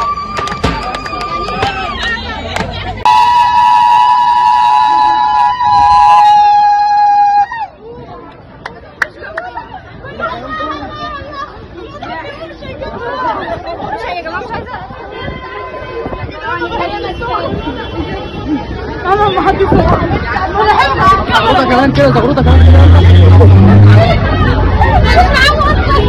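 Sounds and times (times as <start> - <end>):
crowd chatter: 0.0 - 26.0
horn blaring: 22.3 - 24.2.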